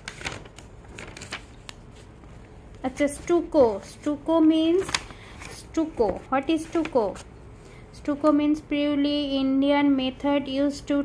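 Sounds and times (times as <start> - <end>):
paper pages rustling: 0.0 - 7.3.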